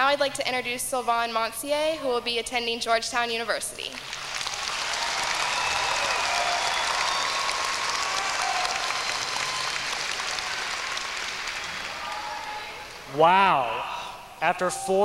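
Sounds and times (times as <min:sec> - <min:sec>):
audience applauding: 0:04.0 - 0:13.1.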